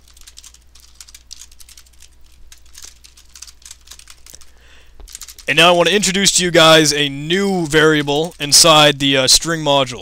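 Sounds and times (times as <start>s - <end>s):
computer keyboard typing: 0.0s - 9.4s.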